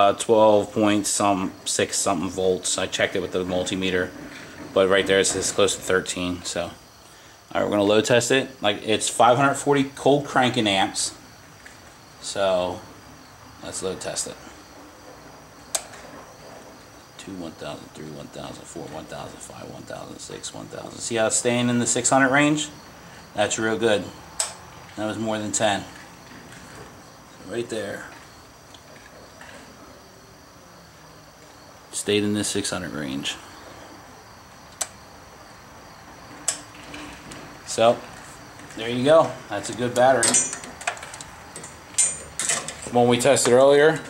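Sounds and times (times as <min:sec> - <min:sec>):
faint high whine: 0:00.0 - 0:44.0
low steady hiss: 0:00.0 - 0:44.0
sharp click: 0:34.7 - 0:35.0.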